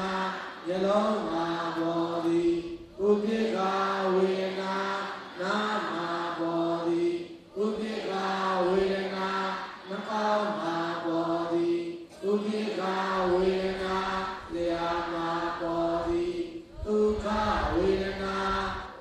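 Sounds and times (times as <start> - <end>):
man chanting: 0.0 - 19.0.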